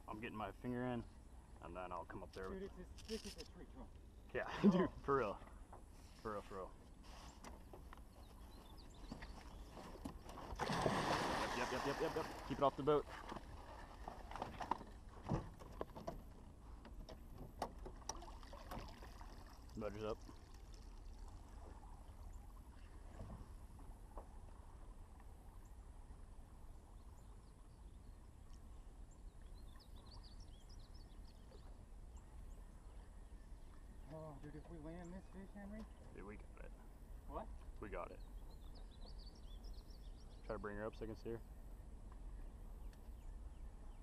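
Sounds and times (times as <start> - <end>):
fish splashing and thrashing: 9.7 - 16.5, 17.2 - 21.9.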